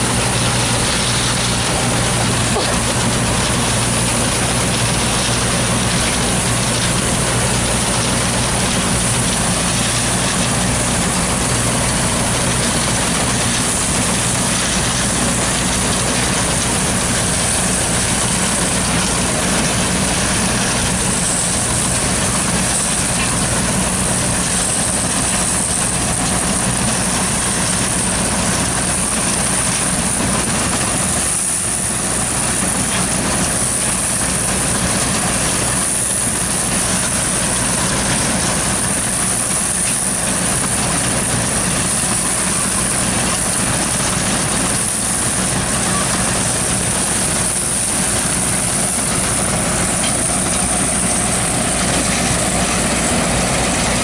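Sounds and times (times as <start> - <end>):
combine harvester droning: 0.0 - 54.0.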